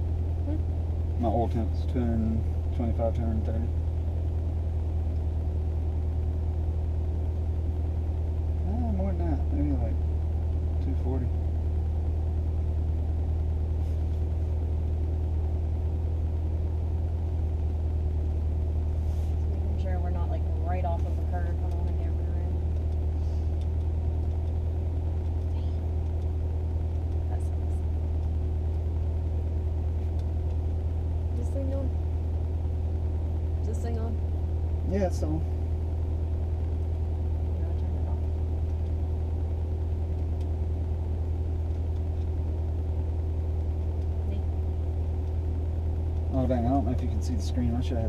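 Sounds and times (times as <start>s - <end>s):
car engine idling: 0.0s - 48.0s
faint steady hum: 0.0s - 48.0s.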